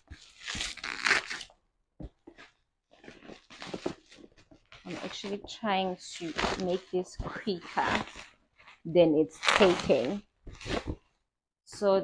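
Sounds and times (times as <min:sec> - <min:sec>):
bubble wrap crinkling: 0:00.0 - 0:01.6, 0:02.2 - 0:11.2.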